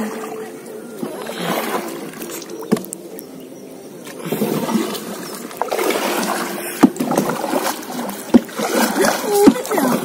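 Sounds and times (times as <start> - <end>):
paddle splashing water: 0.0 - 3.0, 4.0 - 10.0.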